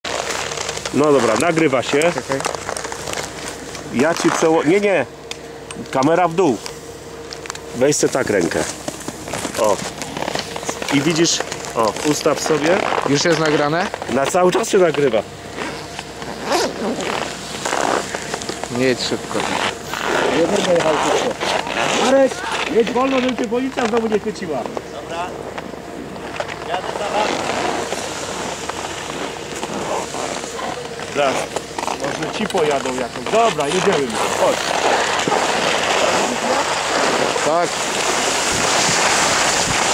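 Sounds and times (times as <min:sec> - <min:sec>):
skis scraping over snow: 0:00.1 - 0:05.0, 0:08.0 - 0:25.3, 0:26.6 - 0:39.9.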